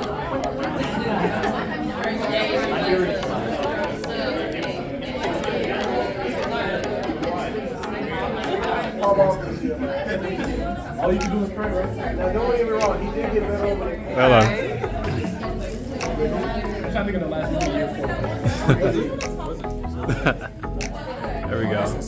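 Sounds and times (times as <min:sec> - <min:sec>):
hubbub of overlapping conversations: 0:00.0 - 0:22.0.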